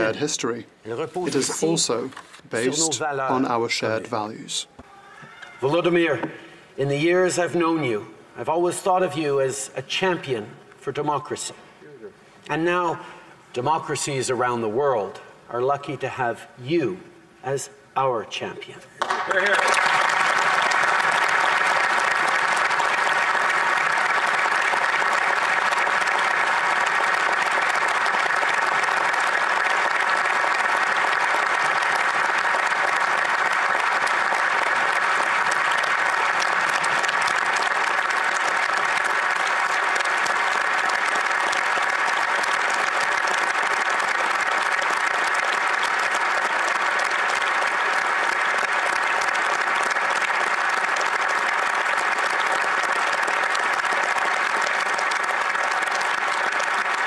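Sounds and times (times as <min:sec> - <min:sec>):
crowd applauding: 0:02.6 - 0:03.5, 0:19.0 - 0:57.0.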